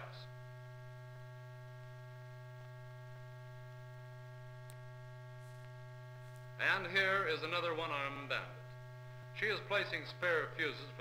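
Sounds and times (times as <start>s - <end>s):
faint high steady tones: 0.0s - 11.0s
low electrical hum: 0.0s - 11.0s.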